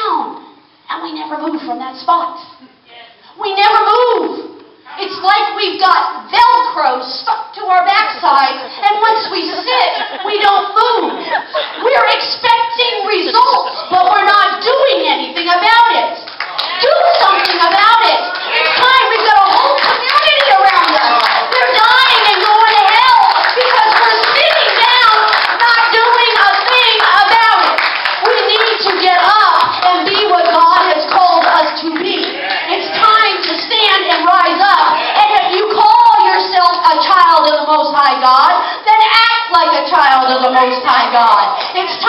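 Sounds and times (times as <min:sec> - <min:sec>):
voices calling out: 0:04.8 - 0:37.6
congregation clapping: 0:16.2 - 0:34.2.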